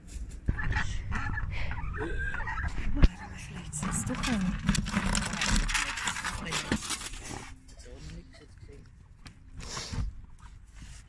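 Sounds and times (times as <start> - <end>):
plastic panel and chain clattering: 3.4 - 7.3.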